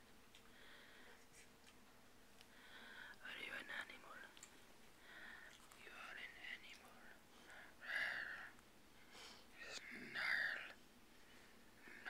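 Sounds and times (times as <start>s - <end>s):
person whispering: 3.1s - 4.4s, 5.7s - 7.2s, 9.5s - 10.8s.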